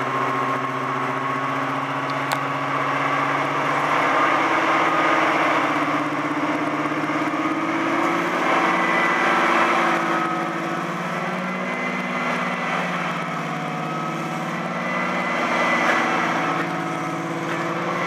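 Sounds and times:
diesel locomotive engines running: 0:00.0 - 0:18.0.

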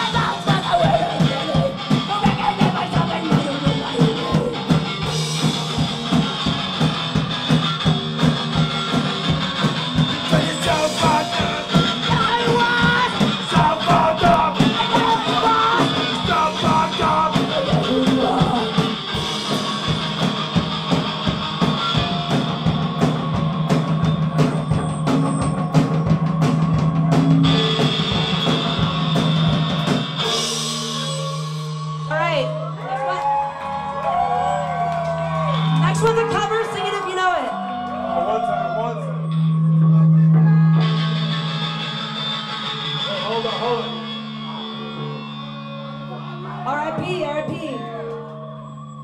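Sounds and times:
vocals: 0:00.0 - 0:05.6, 0:10.0 - 0:19.8, 0:31.0 - 0:32.7, 0:35.8 - 0:37.6, 0:46.1 - 0:49.0
dense steady drumming: 0:00.0 - 0:32.4
punk band playing live: 0:00.0 - 0:48.6.

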